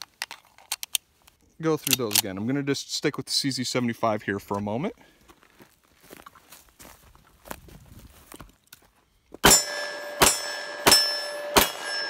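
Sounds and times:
faint footsteps: 4.4s - 9.4s.

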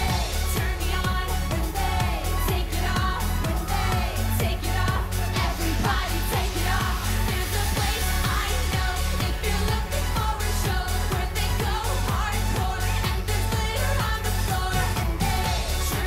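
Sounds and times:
electronic backing track: 0.0s - 16.0s
woman singing: 0.0s - 16.0s.

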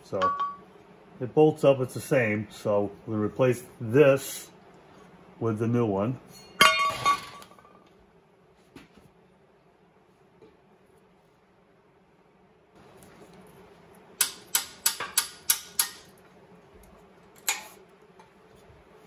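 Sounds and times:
metal clank with ring: 0.2s - 0.6s, 6.3s - 7.7s.

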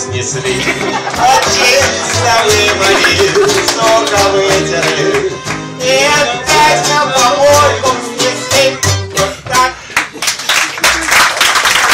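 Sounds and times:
double bass notes: 0.0s - 9.9s
strummed guitar chords: 0.0s - 9.9s
guitar melody: 0.6s - 9.5s.

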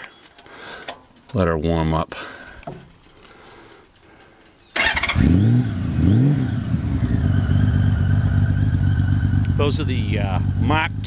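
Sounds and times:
motorcycle engine starting and idling: 4.7s - 11.0s.

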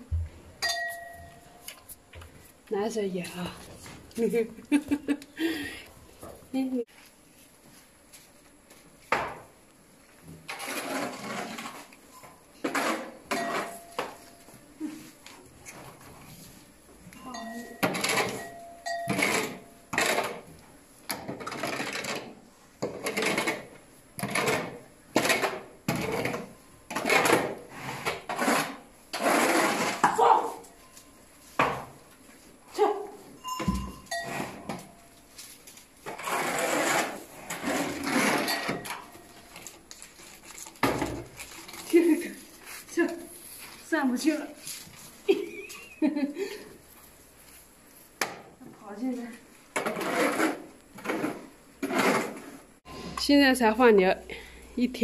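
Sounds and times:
shovel scraping concrete floor: 10.3s - 14.4s, 17.4s - 20.4s, 21.3s - 30.7s, 33.6s - 45.1s, 49.2s - 53.4s.

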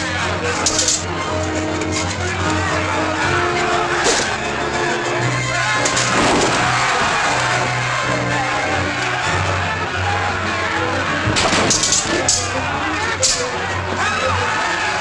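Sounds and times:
crowd shouting: 0.0s - 15.0s
orchestral film music: 0.0s - 15.0s
sword blades clashing: 0.6s - 1.1s, 11.4s - 12.5s, 13.2s - 13.5s.

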